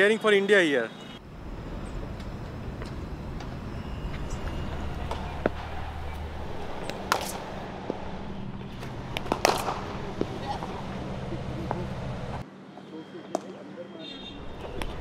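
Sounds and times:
cricket bat striking ball: 6.8s - 8.0s, 8.7s - 10.7s.

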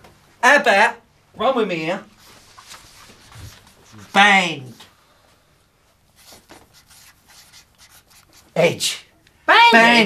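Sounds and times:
marker pen writing on paper: 6.2s - 8.6s.

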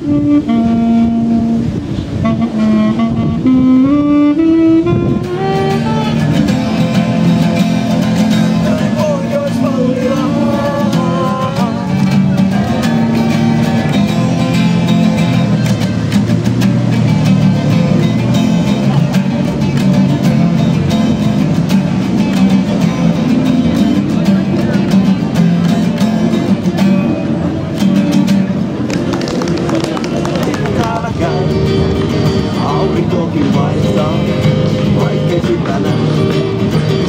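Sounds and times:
acoustic guitars playing: 0.0s - 37.0s.

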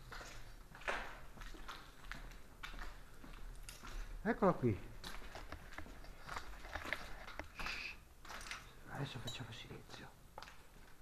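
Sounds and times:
footsteps on gritty floor: 0.0s - 8.8s.

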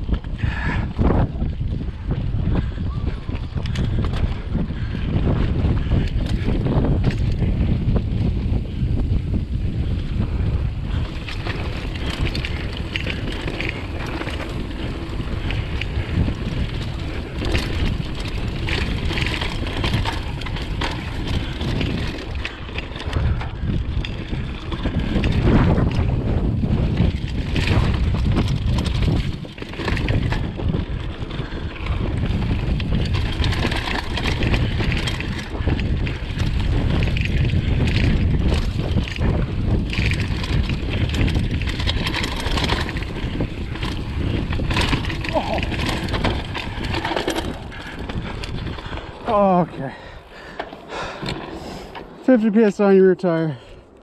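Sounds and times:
bike rattling over rough dirt: 0.0s - 54.0s
wind buffeting microphone: 0.0s - 54.0s.

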